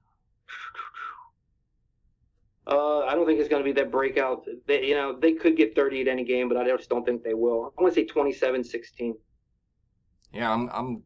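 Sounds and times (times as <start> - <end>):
quiet breathy human voice: 0.0 - 1.4.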